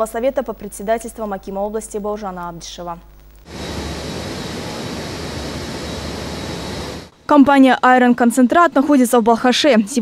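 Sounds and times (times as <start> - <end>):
low hum: 3.1 - 7.2
machinery noise: 3.5 - 7.1.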